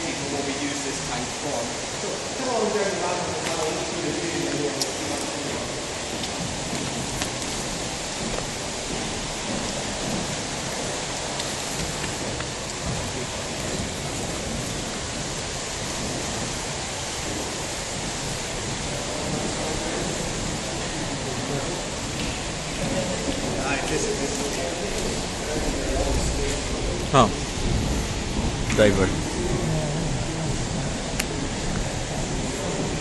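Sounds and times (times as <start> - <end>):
water rushing: 0.0 - 33.0
faint voices: 17.5 - 33.0.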